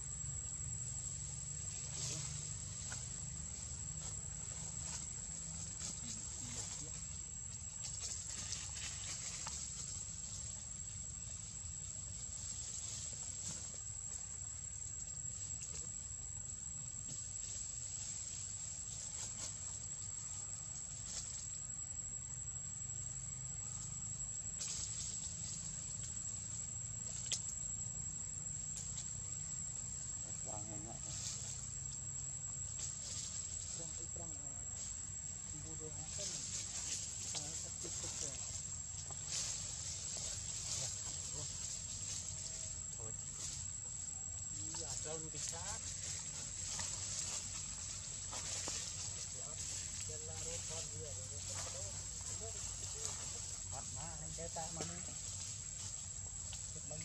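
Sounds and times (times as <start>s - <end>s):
high-pitched insect drone: 0.0s - 57.0s.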